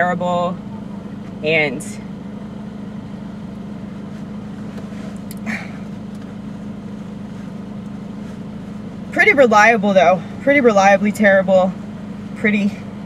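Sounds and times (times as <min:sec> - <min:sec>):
car cabin hum: 0:00.0 - 0:13.0.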